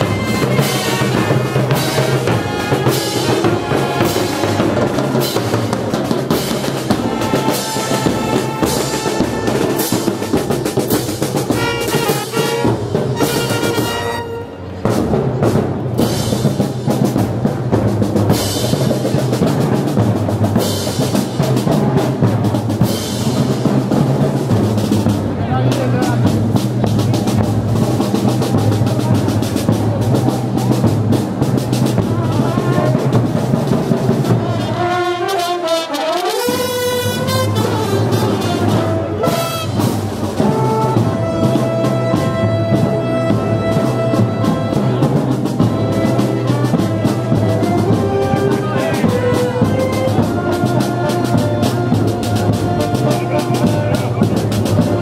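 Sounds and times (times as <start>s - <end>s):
saxophones and wind instruments: 0.0s - 15.2s, 26.8s - 55.0s
bass and snare drums beat: 0.0s - 55.0s
marching band playing: 0.0s - 55.0s.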